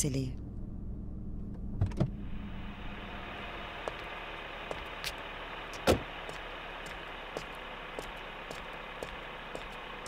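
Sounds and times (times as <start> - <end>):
car idling: 0.0 - 10.0
car door shutting: 1.5 - 2.2, 5.8 - 6.1.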